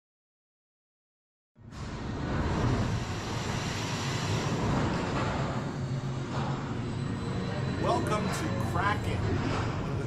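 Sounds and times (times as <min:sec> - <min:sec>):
roller coaster train rumble: 0:01.6 - 0:10.0.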